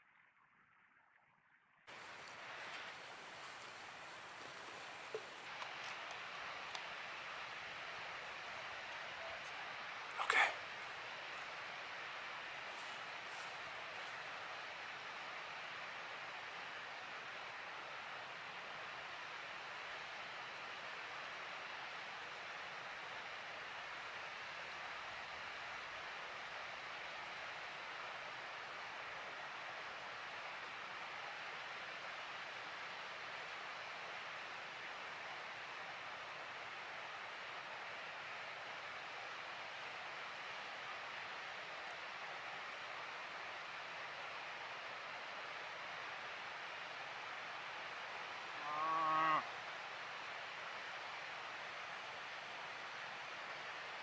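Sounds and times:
steady background hiss: 1.9s - 54.0s.

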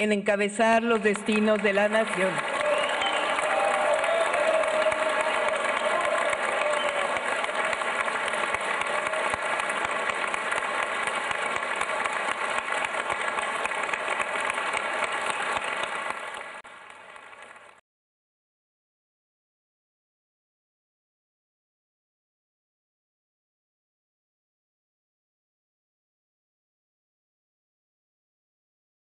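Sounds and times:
audience applauding: 0.6s - 17.8s
voices from the crowd: 2.1s - 10.3s.

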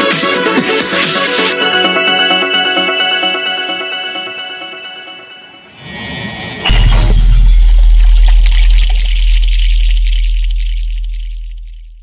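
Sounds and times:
noise crash: 5.6s - 12.0s
deep boom with shimmer: 5.7s - 12.0s.

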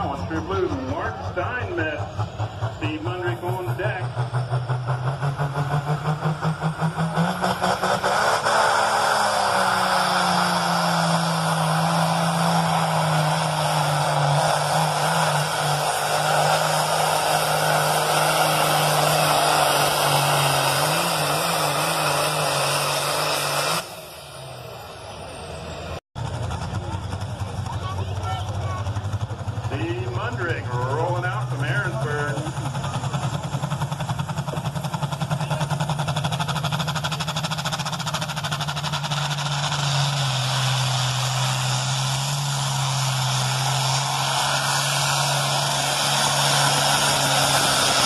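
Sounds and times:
quieter engine running: 0.0s - 48.0s
tractor diesel engine under load: 0.0s - 48.0s.

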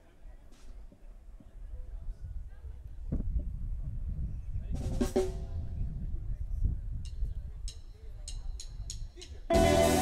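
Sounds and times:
band holding a chord: 9.5s - 10.0s
drum kit hits: 9.5s - 10.0s.

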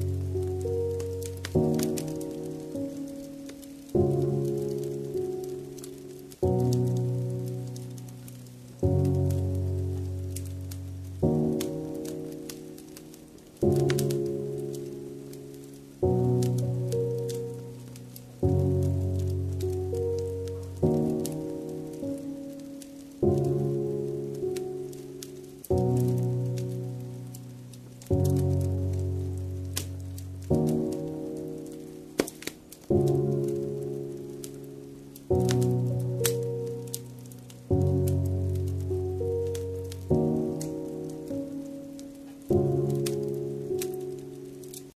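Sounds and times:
slow piano chords: 0.0s - 44.9s
wood fire crackling: 0.0s - 44.9s.

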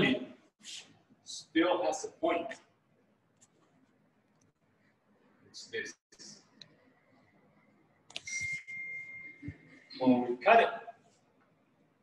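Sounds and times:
high-pitched electronic beep tone: 8.2s - 10.0s.

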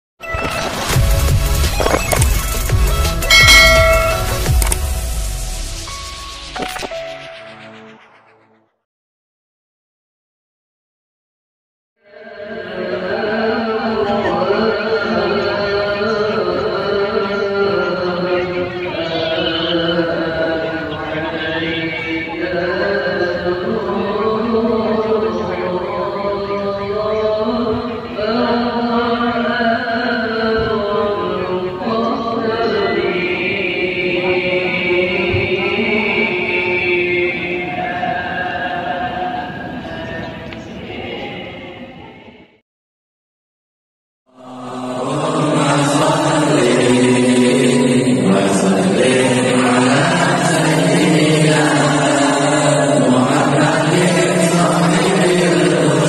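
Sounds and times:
devotional chanting: 3.3s - 5.1s, 12.0s - 42.6s, 44.3s - 56.0s.

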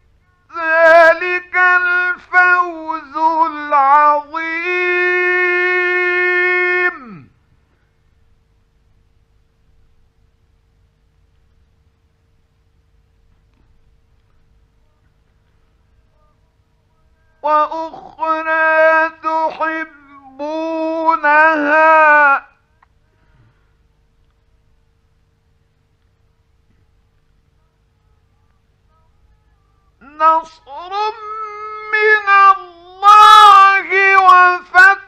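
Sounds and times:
faint steady hum: 0.0s - 35.0s
man reciting in a long note: 0.2s - 7.4s, 15.8s - 22.9s, 27.6s - 35.0s.

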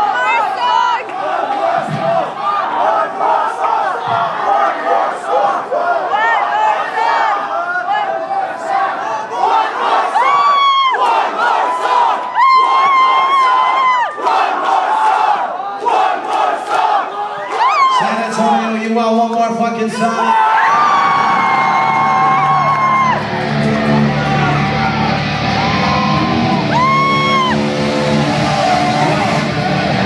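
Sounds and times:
crowd shouting and cheering: 0.0s - 30.0s
long high yells: 24.4s - 29.9s.

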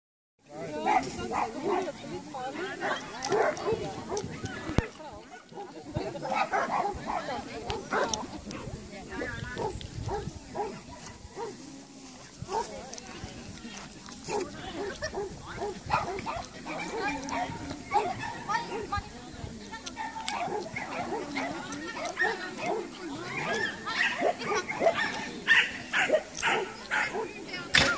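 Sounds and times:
people talking: 0.5s - 27.9s
small dog barking: 20.0s - 22.9s, 23.5s - 27.3s.

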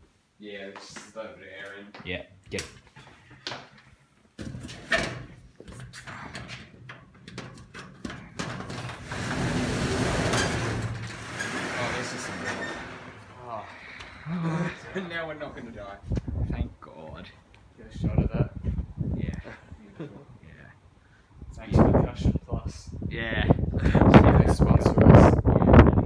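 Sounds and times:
garage door clunk: 4.4s - 13.4s
metal roller door rattling: 6.1s - 13.4s.

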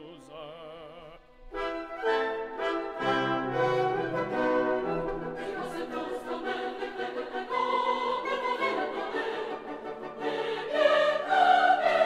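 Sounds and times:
orchestral music with brass: 0.1s - 12.0s.

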